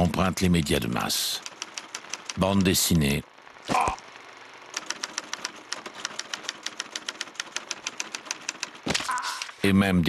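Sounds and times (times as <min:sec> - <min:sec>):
typewriter keys clacking: 0:01.4 - 0:02.7, 0:04.8 - 0:09.6.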